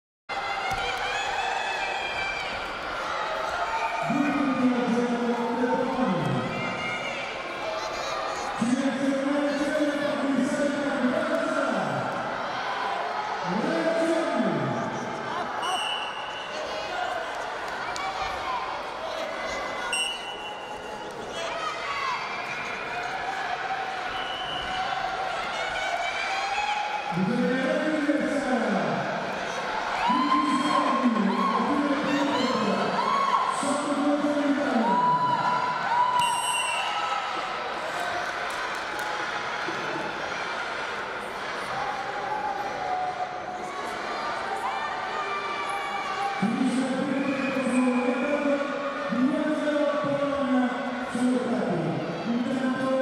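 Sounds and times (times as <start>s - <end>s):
people shouting in an arena: 0.3s - 53.0s
referee's whistle blasts: 15.6s - 16.5s, 19.9s - 20.7s, 36.2s - 37.0s.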